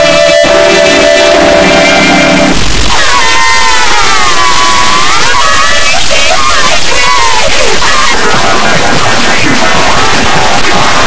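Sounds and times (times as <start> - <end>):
distorted held pitched tone: 0.0 - 11.0
harsh noise: 0.0 - 11.0.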